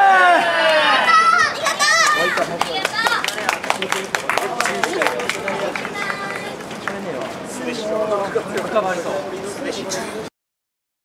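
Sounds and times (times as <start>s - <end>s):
people talking indistinctly: 0.8s - 10.3s.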